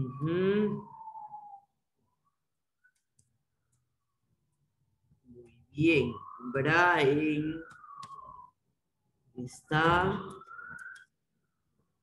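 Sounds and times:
person speaking: 5.7s - 7.8s, 9.4s - 10.5s.

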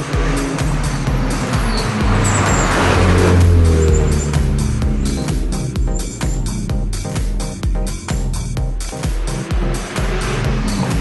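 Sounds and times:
electronic background music: 0.0s - 11.0s
race car passing at speed: 0.1s - 6.1s.

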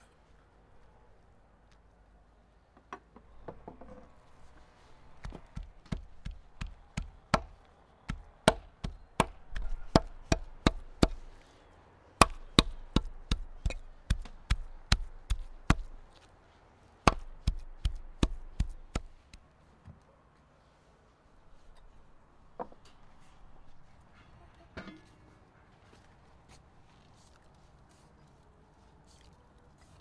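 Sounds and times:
cleaver chopping meat on wood: 5.2s - 11.2s, 12.2s - 16.0s, 17.1s - 19.1s.

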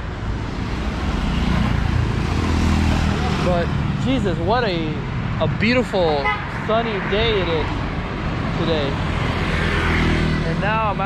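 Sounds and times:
motorbike passing: 0.0s - 11.0s
traffic noise: 0.0s - 11.0s.

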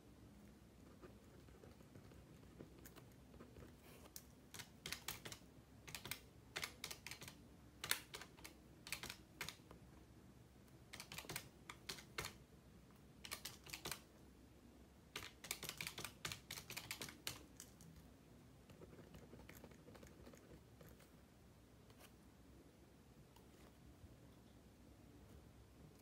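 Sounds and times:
calculator keys clicking: 4.5s - 9.6s, 10.9s - 12.4s, 13.2s - 14.0s, 15.2s - 17.4s.

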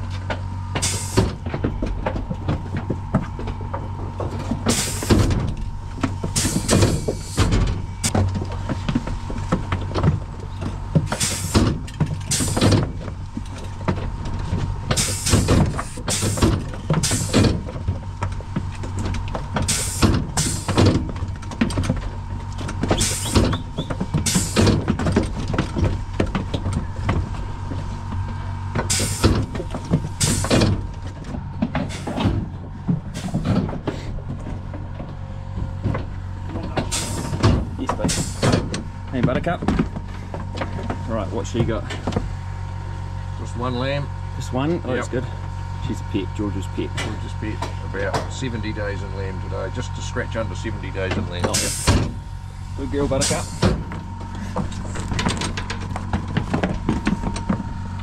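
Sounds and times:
metal crate clanking and rattling: 0.0s - 42.4s, 50.1s - 58.0s
steady low hum: 0.0s - 58.0s.

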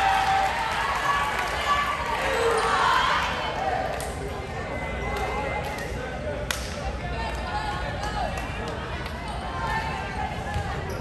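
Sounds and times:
people calling out and chattering: 1.1s - 11.0s.

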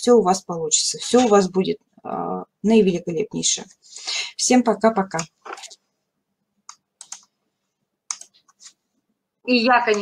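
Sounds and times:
computer mouse clicks: 6.6s - 7.4s, 8.1s - 8.8s.

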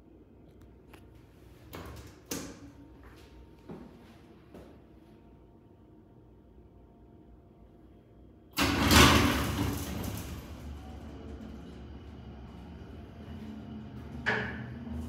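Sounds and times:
elevator running rumble: 8.5s - 15.0s
elevator doors clattering shut: 8.6s - 15.0s.

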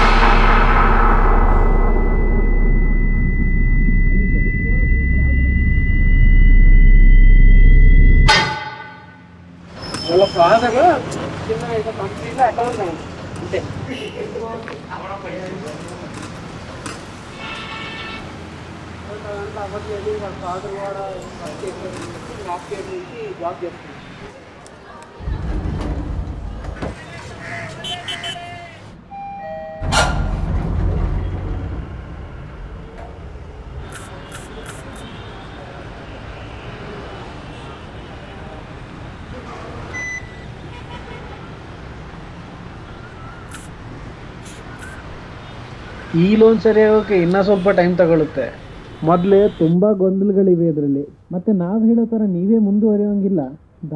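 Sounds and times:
high-pitched ringing tone: 0.0s - 8.3s
muffled low rumble: 0.0s - 8.3s
sharp ringing hit: 0.0s - 8.8s.

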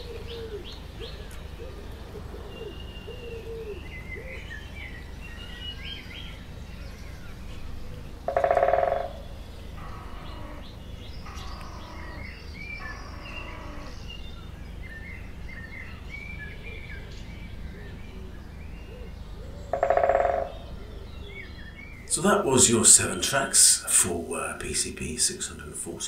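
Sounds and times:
birds chirping: 0.0s - 26.0s
drawn-out bird calls: 7.7s - 14.6s, 18.1s - 26.0s.

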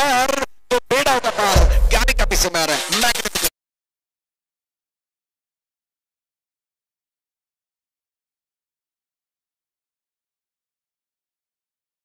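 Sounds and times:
man talking: 0.0s - 3.5s.

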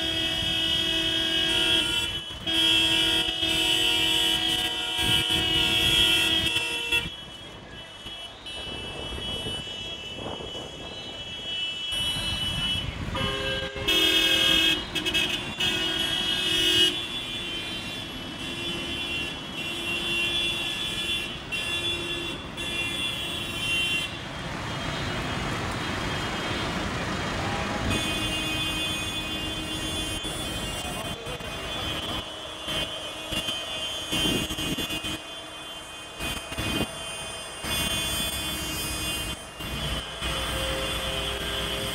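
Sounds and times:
road traffic engines running: 0.0s - 41.9s
vehicle horns blasting: 0.0s - 41.9s.

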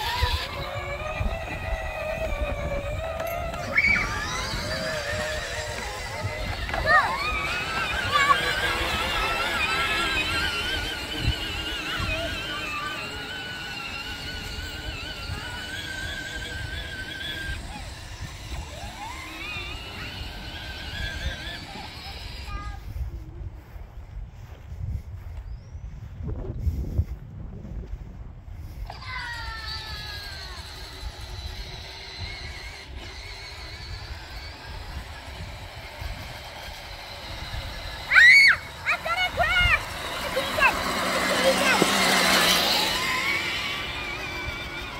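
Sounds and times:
electric toy vehicle motor whining: 0.0s - 23.4s, 28.6s - 44.9s
low bumps: 0.0s - 23.5s
child shouting: 3.5s - 13.7s, 29.0s - 30.7s, 38.0s - 43.5s.

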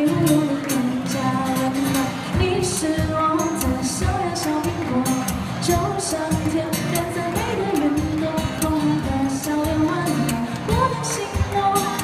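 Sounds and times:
acoustic guitar: 0.0s - 12.0s
woman singing into microphone: 0.0s - 12.0s.

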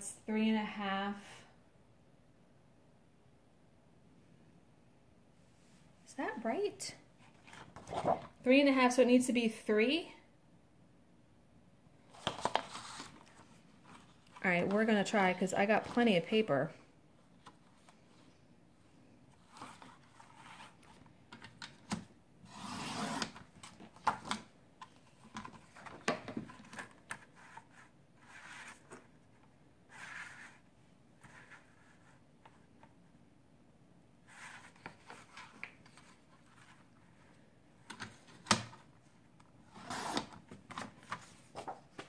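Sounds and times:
paper rustling: 12.1s - 14.9s, 39.8s - 42.0s.

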